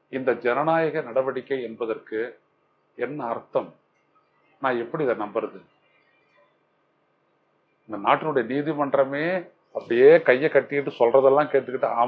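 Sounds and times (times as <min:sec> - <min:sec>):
man speaking: 0:00.1 - 0:02.4, 0:03.0 - 0:03.8, 0:04.6 - 0:05.6, 0:07.9 - 0:12.0.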